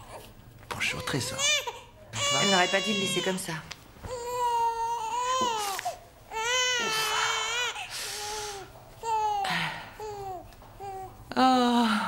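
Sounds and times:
newborn baby crying: 0.9s - 11.1s.

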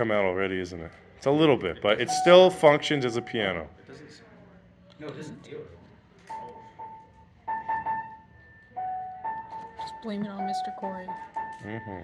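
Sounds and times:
piano single notes: 6.7s - 12.0s.

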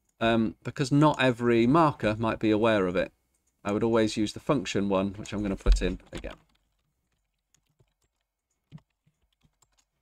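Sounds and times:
faint keyboard typing: 5.1s - 10.0s.

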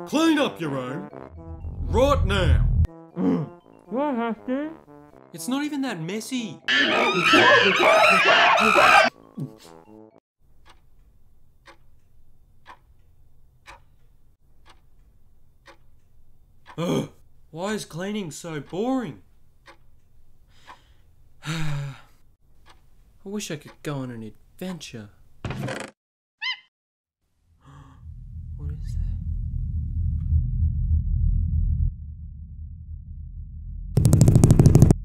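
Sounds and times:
person sighing wearily: 3.2s - 3.6s, 16.8s - 17.2s, 21.4s - 22.2s, 27.6s - 28.1s
overlapping shrill wavering cries: 6.7s - 9.1s.

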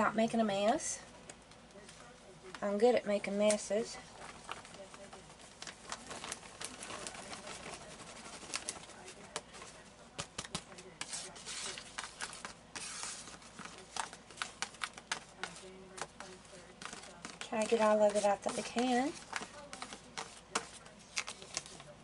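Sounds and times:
plastic bag rustling: 4.0s - 22.0s.

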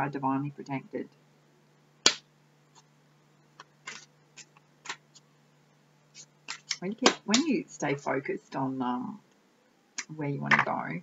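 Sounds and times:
faint steady hum: 0.0s - 11.0s
cards clicking: 3.6s - 5.0s, 6.2s - 7.5s
cards rustling: 3.6s - 5.2s, 6.2s - 7.5s.

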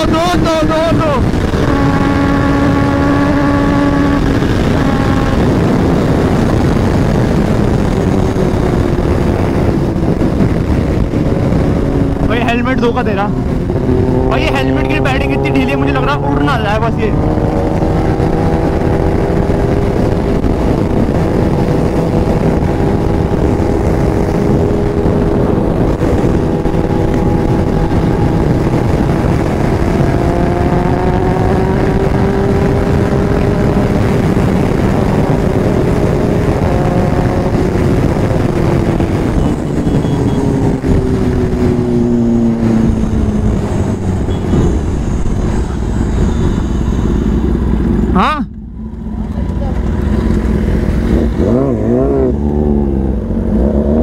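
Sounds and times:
motorcycle engine running hard: 0.0s - 54.0s
wind rush over microphone: 0.0s - 54.0s.

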